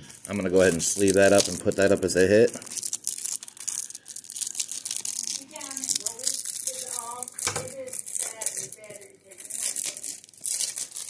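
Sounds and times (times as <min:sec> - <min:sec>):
plastic card sleeve crinkling: 0:00.0 - 0:11.0.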